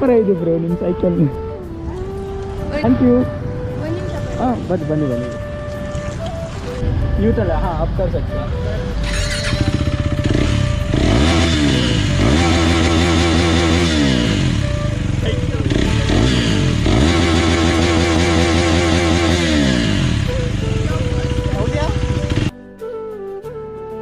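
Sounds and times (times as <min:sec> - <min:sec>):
motorcycle engine idling and revving: 0:00.0 - 0:22.5.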